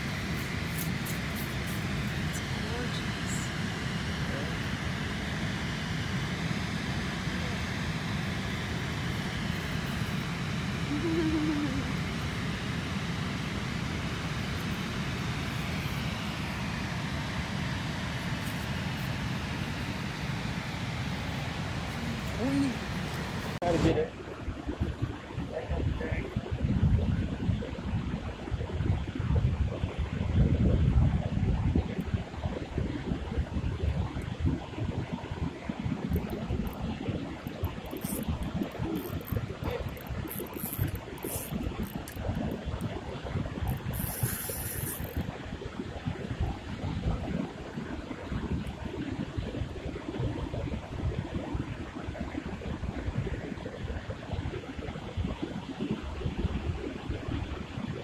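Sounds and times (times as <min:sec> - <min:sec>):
wind rumbling on microphone: 0:00.0 - 0:58.0.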